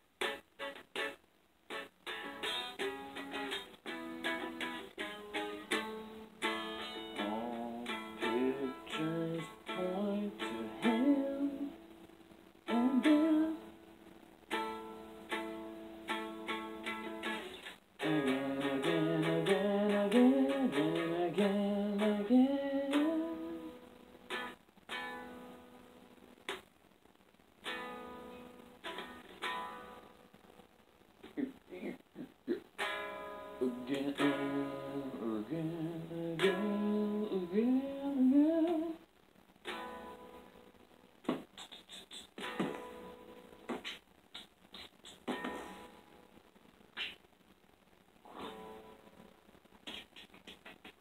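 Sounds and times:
plucked string instrument: 0:00.2 - 0:13.8, 0:14.5 - 0:25.9, 0:27.6 - 0:30.1, 0:32.8 - 0:39.0, 0:39.6 - 0:40.6, 0:42.4 - 0:46.1, 0:48.3 - 0:49.2.

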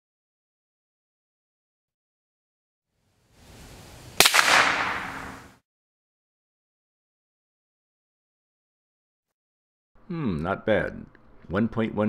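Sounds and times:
rifle shot with echo: 0:04.2 - 0:05.6.

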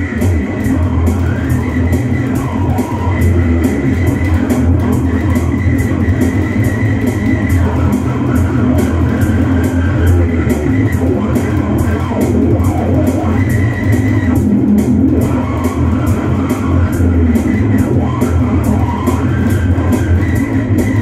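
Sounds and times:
fingerstyle electric bass guitar: 0:00.0 - 0:21.0
heavy rock music: 0:00.0 - 0:21.0.

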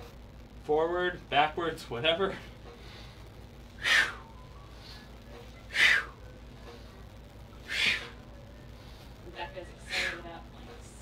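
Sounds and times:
man's forceful breaths: 0:02.5 - 0:06.2, 0:07.6 - 0:08.2.

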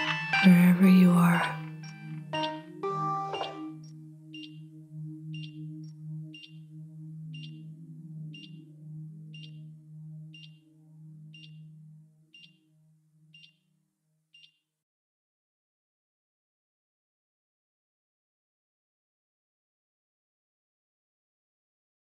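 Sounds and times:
heart monitor beeping: 0:01.2 - 0:02.7, 0:03.3 - 0:04.7, 0:05.3 - 0:06.7, 0:07.3 - 0:08.7, 0:09.3 - 0:09.7, 0:10.3 - 0:10.7, 0:11.3 - 0:11.6, 0:12.4 - 0:12.6, 0:13.4 - 0:13.6.

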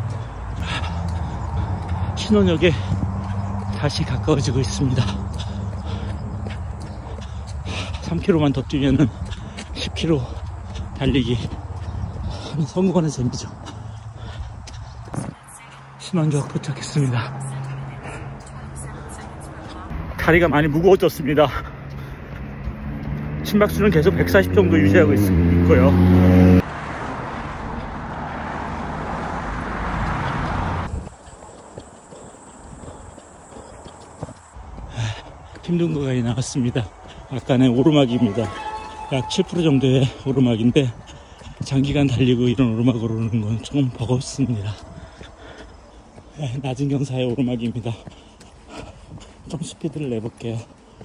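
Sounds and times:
running footsteps on pavement: 0:00.0 - 0:51.0
man's voice: 0:02.1 - 0:03.1, 0:19.9 - 0:21.8, 0:23.4 - 0:26.4, 0:35.6 - 0:44.8.

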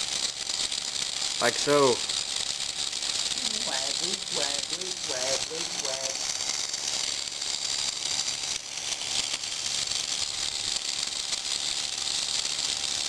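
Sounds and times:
flasher motor whirring: 0:00.0 - 0:13.0.

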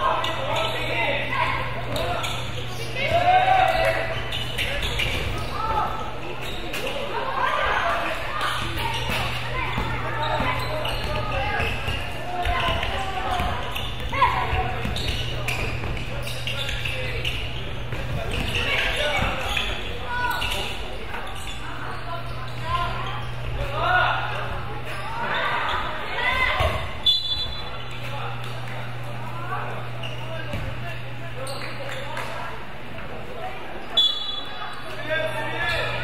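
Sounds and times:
voices calling out in hall: 0:00.0 - 0:36.0
referee's whistle: 0:27.0 - 0:27.7, 0:34.0 - 0:34.6.

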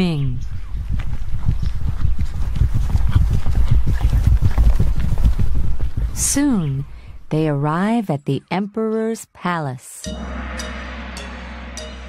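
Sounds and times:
horses' hooves clip-clopping: 0:00.5 - 0:06.8.

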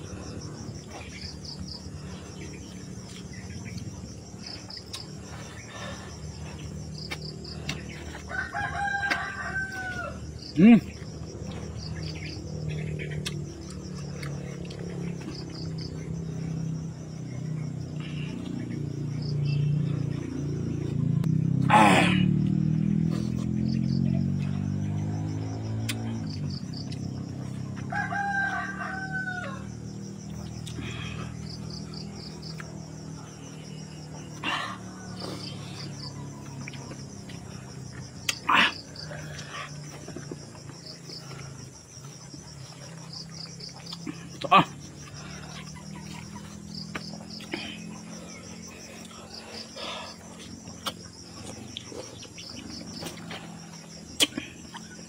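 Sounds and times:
insects chirping: 0:00.0 - 0:55.0
rooster crowing: 0:07.4 - 0:10.6, 0:27.6 - 0:30.2, 0:33.7 - 0:37.8.

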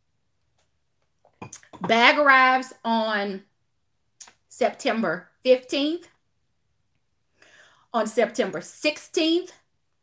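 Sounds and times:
woman speaking: 0:01.6 - 0:03.5, 0:04.5 - 0:06.1, 0:08.0 - 0:09.7.

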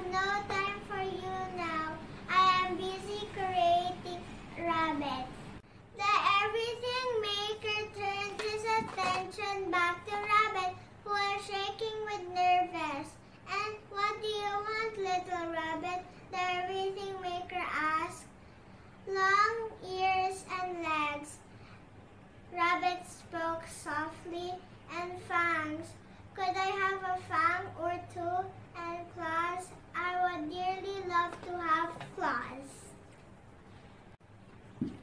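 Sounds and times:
girl speaking in a sing-song way: 0:00.0 - 0:18.4, 0:19.0 - 0:21.5, 0:22.5 - 0:33.0.

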